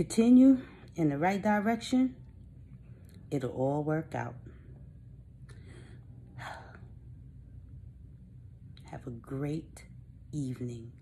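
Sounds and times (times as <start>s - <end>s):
low room hum: 0.0s - 11.0s
woman breathing in: 5.5s - 7.0s.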